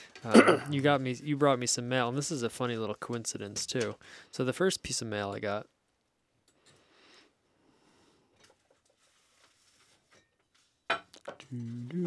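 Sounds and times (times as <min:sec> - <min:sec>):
paper rustling: 0:08.6 - 0:10.8.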